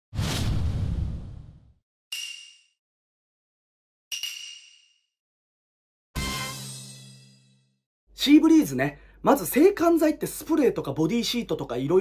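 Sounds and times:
whoosh: 0:00.2 - 0:01.7.

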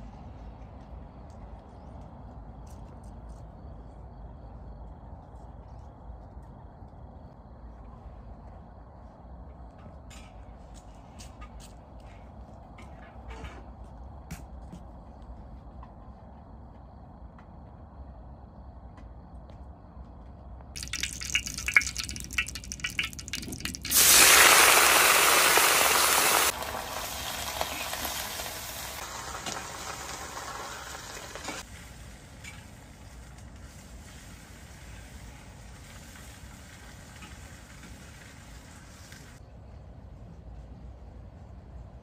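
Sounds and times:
hot oil crackling and popping: 0:20.8 - 0:39.4
loud sizzle: 0:20.8 - 0:39.4.

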